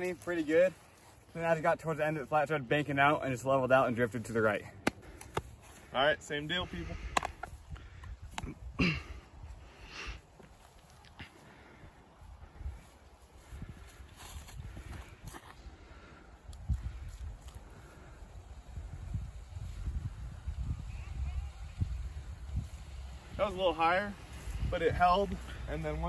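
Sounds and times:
wind rumbling on microphone: 6.6s - 10.1s, 11.8s - 26.0s.

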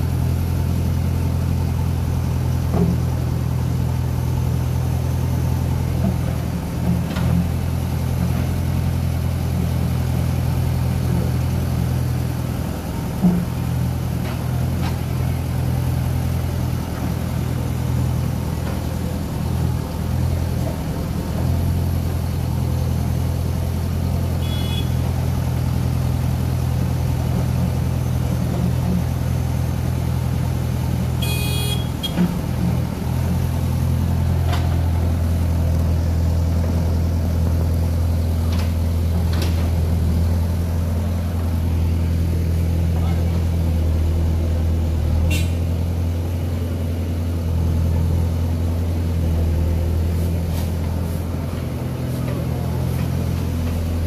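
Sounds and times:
diesel engine running: 0.0s - 54.0s.

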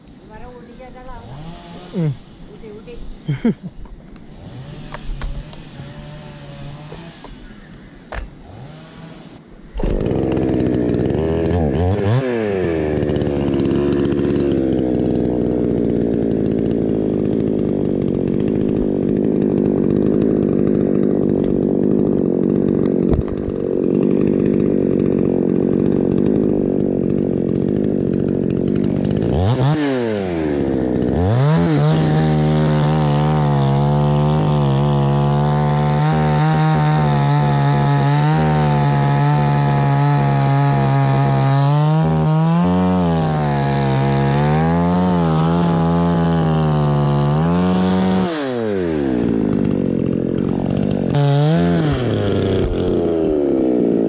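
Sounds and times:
chainsaw engine revving: 0.8s - 54.0s.

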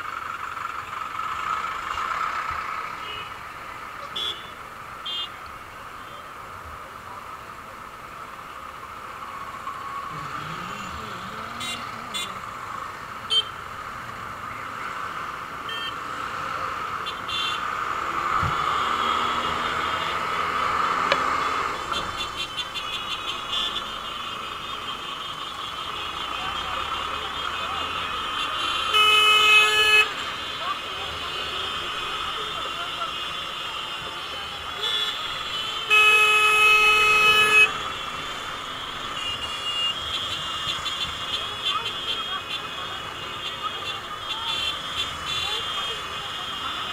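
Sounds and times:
traffic engines running: 0.0s - 46.9s
vehicle horn: 4.1s - 5.4s, 10.2s - 12.6s, 13.3s - 13.6s, 17.0s - 17.7s, 18.5s - 25.2s, 25.9s - 46.9s.

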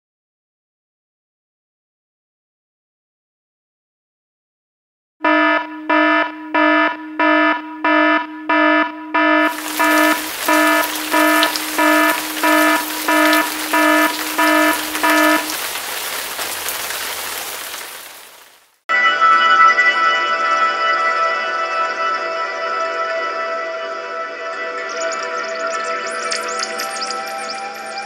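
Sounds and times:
buzzy electronic alarm beeps: 5.2s - 15.5s
loud steady static hiss: 9.5s - 18.5s.

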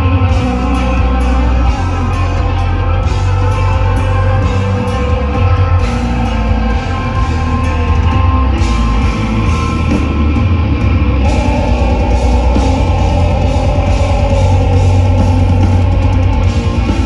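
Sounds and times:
death metal band playing live: 0.0s - 17.0s.

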